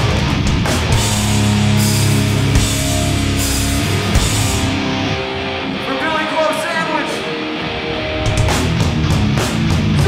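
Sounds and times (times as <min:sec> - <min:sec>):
distorted electric guitar: 0:00.0 - 0:10.0
hardcore band playing: 0:00.0 - 0:10.0.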